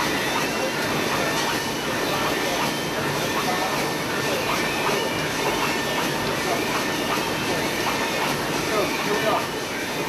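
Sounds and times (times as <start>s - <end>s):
faint indistinct voices: 0.0s - 10.0s
printing press machine noise: 0.0s - 10.0s.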